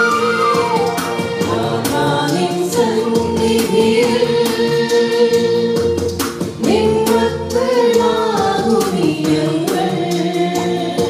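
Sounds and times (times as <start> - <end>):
women singing together: 0.0 - 11.0.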